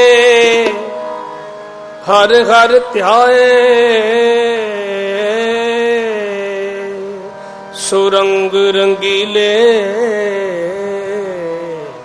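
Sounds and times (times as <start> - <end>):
harmonium held notes: 0.0 - 12.0
person singing: 2.0 - 12.0.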